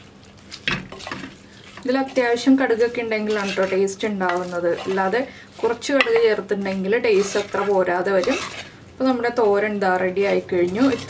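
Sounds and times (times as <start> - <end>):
spatula scraping in pot: 0.9 - 11.0.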